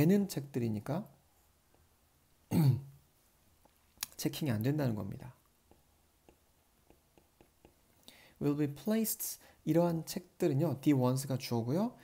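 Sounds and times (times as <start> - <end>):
man's short vocal sound: 2.5 - 3.0.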